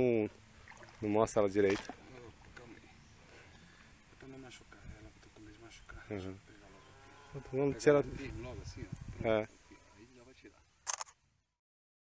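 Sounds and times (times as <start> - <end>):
camera shutter double click: 10.8 - 11.2.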